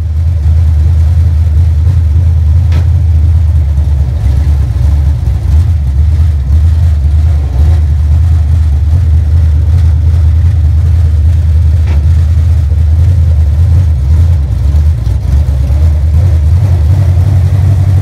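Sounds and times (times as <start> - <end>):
race car engine rumbling: 0.0 - 18.0.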